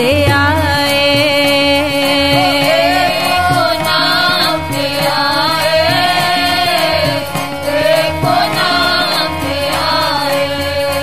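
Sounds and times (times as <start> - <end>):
harmonium chords: 0.0 - 11.0
voices singing: 1.4 - 11.0
steady drum beat: 2.3 - 10.1.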